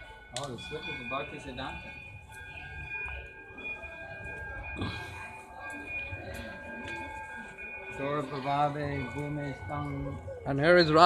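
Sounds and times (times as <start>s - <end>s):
faint distant voices: 0.0s - 11.0s
faint steady held tones: 0.0s - 11.0s.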